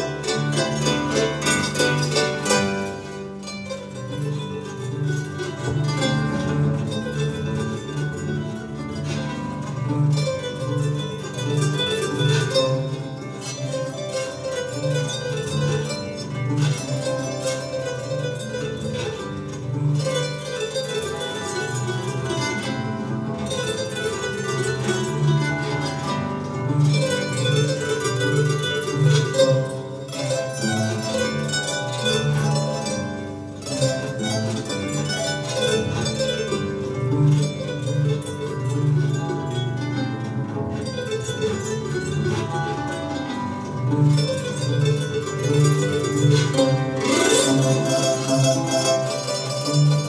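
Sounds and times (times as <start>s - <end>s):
harp playing: 0.0s - 50.0s.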